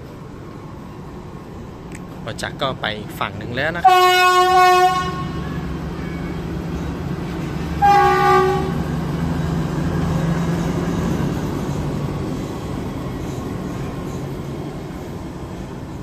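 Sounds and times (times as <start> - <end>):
diesel locomotive rumble: 0.0 - 16.0
locomotive horn blast: 3.8 - 6.4, 7.7 - 8.8.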